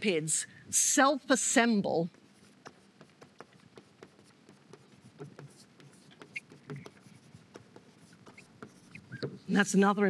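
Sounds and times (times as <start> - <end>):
chalk tapping and scraping on blackboard: 2.1 - 9.5.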